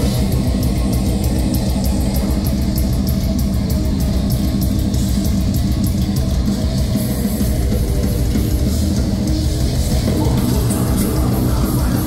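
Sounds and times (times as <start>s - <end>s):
distorted electric guitars: 0.0s - 12.0s
drums and cymbals: 0.0s - 12.0s.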